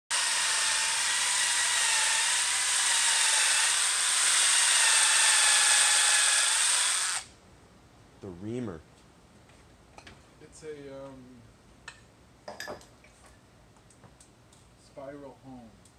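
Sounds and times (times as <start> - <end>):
cordless drill whining: 0.1 - 7.3.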